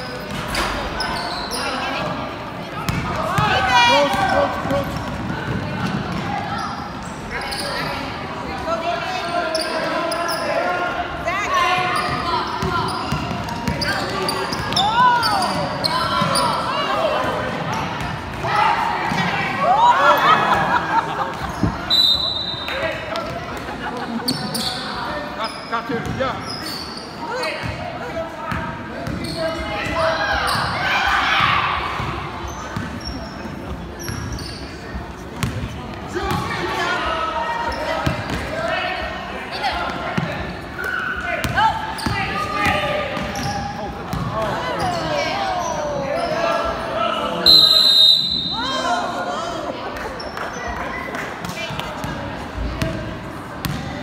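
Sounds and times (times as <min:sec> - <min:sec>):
sneakers squeaking on court: 0:00.0 - 0:08.1, 0:11.8 - 0:18.5, 0:24.2 - 0:30.8, 0:32.0 - 0:36.5, 0:39.8 - 0:47.0, 0:51.6 - 0:54.0
echoing voices in gym: 0:00.0 - 0:54.0
basketball bouncing: 0:02.9 - 0:03.4, 0:35.4 - 0:35.6, 0:44.1 - 0:44.4, 0:53.6 - 0:53.9.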